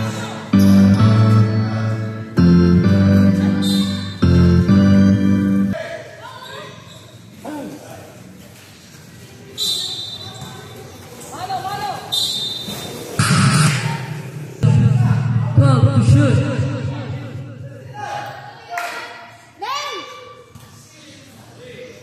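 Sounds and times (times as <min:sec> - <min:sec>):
music over sound system: 0:00.0 - 0:05.8, 0:13.2 - 0:17.7.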